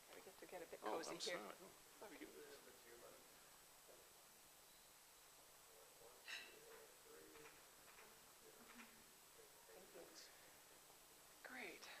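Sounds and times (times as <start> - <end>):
quiet speech: 5.6 - 10.6.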